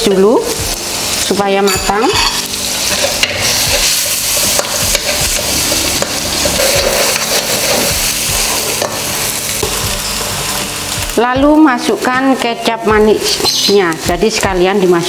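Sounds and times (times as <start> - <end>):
food sizzling in hot oil: 0.0 - 15.0
metal spatula scraping a wok: 1.7 - 10.2.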